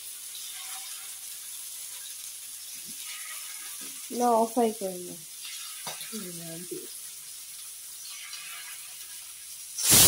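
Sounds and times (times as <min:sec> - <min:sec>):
oil sizzling in a frying pan: 0:00.0 - 0:10.0.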